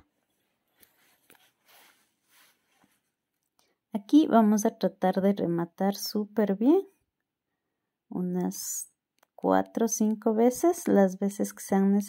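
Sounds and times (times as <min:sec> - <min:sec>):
soft rustle of hands sewing: 0:00.0 - 0:03.5.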